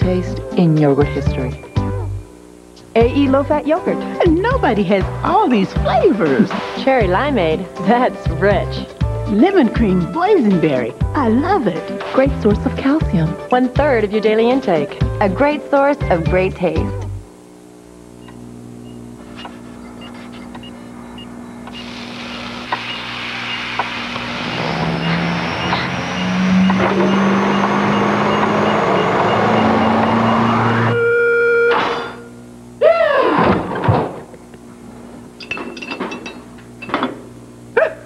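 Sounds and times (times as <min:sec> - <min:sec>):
short electronic tone: 0:18.9 - 0:32.4
rising noisy build with whistle: 0:21.0 - 0:31.8.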